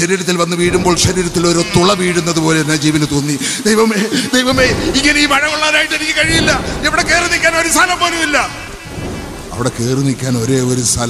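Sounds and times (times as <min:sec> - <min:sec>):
man storytelling: 0:00.0 - 0:11.0
noisy rush: 0:00.0 - 0:11.0.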